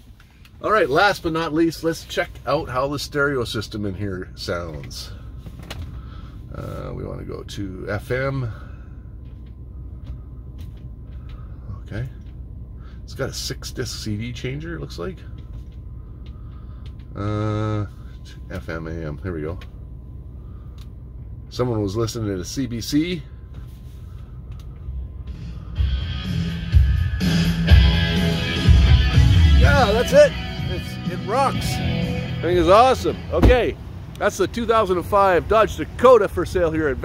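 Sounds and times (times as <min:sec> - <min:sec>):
low rumble in vehicle cab: 0:00.0 - 0:37.0
heavy bass beats: 0:25.0 - 0:33.9
rock music through car stereo: 0:25.2 - 0:34.0.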